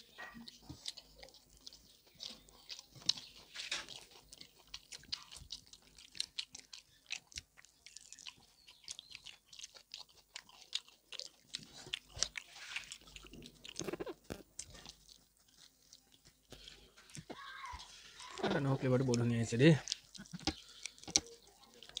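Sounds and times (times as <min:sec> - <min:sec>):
chewing and mouth smacks: 0:00.0 - 0:22.0.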